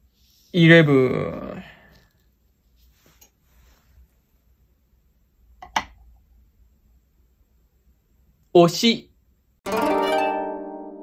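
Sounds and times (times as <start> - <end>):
brush rustling on paper: 2.6 - 4.2.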